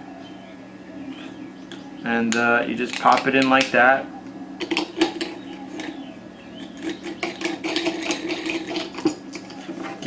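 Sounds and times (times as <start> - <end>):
steady low hum: 0.0 - 10.0
metal clicks and scraping: 1.7 - 3.7, 4.6 - 6.0, 6.6 - 10.0.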